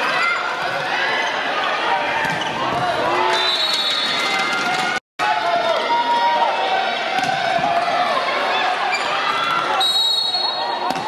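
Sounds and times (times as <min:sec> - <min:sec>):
players and crowd shouting: 0:00.0 - 0:11.0.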